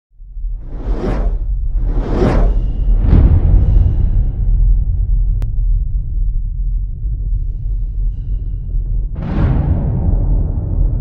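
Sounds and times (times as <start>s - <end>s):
deep low rumble: 0.1s - 11.0s
cinematic whoosh: 0.4s - 5.4s.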